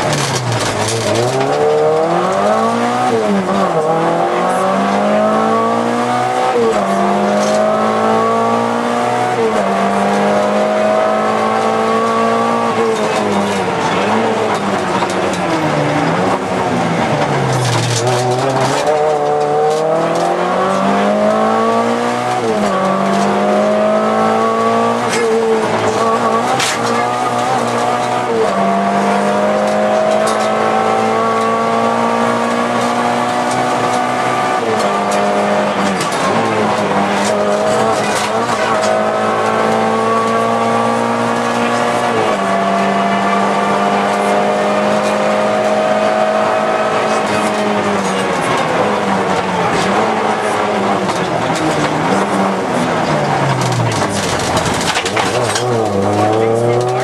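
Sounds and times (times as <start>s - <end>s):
car engine at high revs: 0.0s - 57.0s.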